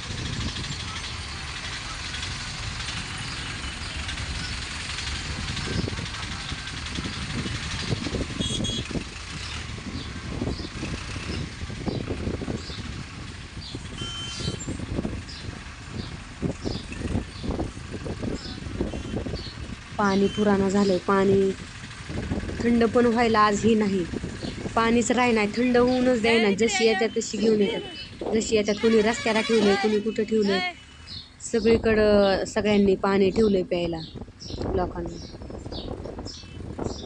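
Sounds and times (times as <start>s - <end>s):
tractor and truck engines rumbling: 0.0s - 37.0s
murmur of voices: 25.6s - 30.8s.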